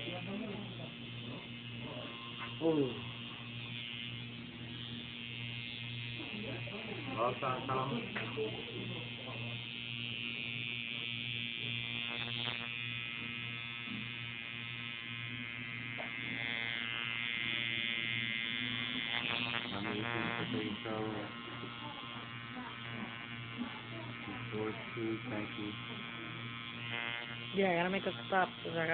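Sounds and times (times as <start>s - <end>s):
tattoo machine buzzing: 0.0s - 28.9s.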